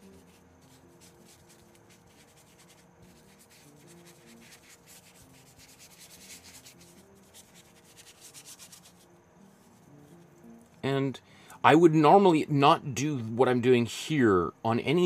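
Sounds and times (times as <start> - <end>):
paintbrush scrubbing on canvas: 0.0 - 9.0.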